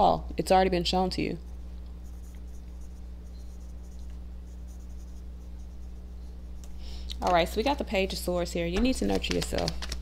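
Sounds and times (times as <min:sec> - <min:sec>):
steady low hum: 0:00.0 - 0:10.0
cards rustling: 0:08.9 - 0:10.0.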